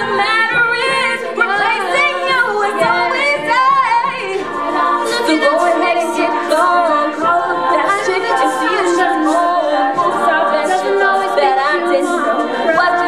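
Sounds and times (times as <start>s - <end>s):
backing vocal harmonies: 0.0s - 13.0s
female lead voice singing: 0.0s - 13.0s
vocal percussion: 0.0s - 13.0s.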